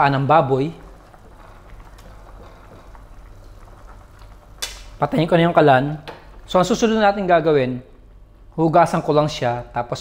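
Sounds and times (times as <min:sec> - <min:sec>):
water boiling in a pan: 0:00.0 - 0:07.5.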